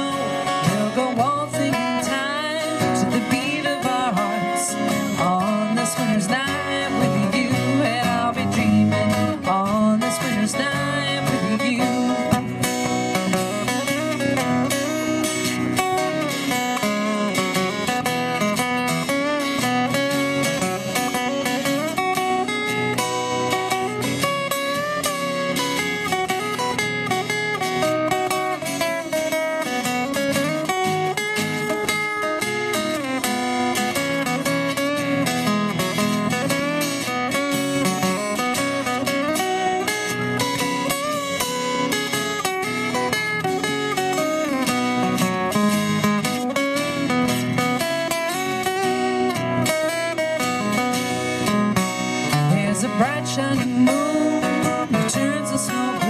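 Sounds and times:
acoustic guitars playing folk: 0:00.0 - 0:56.0.

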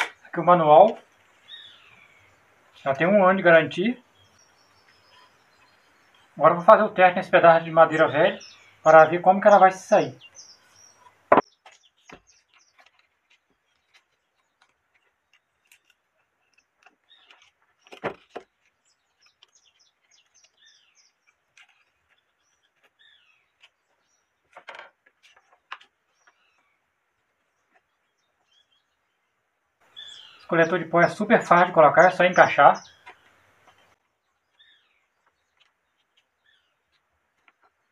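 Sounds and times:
faint bird chirps: 0:01.1 - 0:03.1, 0:03.8 - 0:06.4, 0:07.9 - 0:24.6, 0:25.2 - 0:37.9.

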